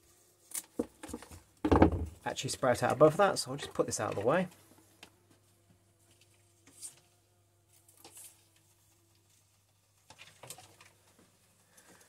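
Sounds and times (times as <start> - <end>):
hands rustling plant cuttings: 7.7 - 11.2.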